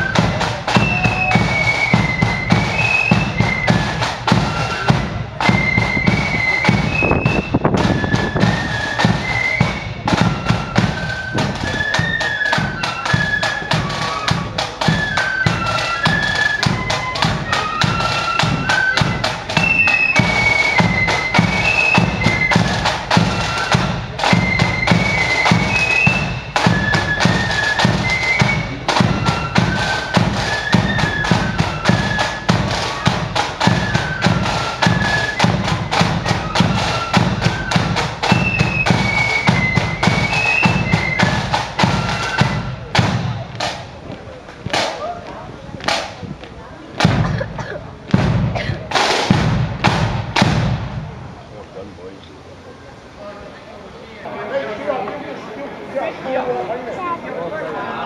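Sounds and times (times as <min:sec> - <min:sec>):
high flute melody: 0:00.0 - 0:43.7
rapid snare drumming: 0:00.0 - 0:44.0, 0:47.0 - 0:51.2
bass drum beat: 0:47.0 - 0:51.2.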